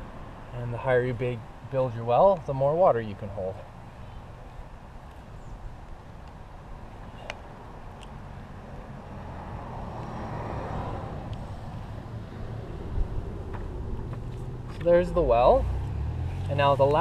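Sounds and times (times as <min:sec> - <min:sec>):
car passing: 0:06.8 - 0:17.0.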